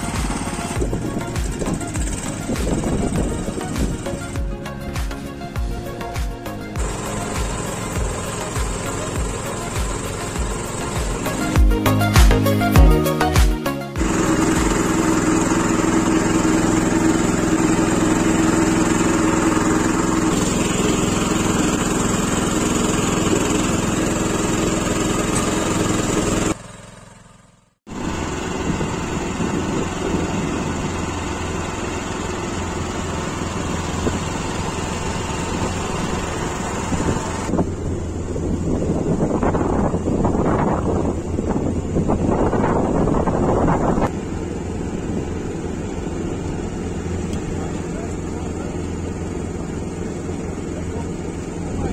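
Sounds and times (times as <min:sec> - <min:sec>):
tractor engine running: 0:00.0 - 0:51.9.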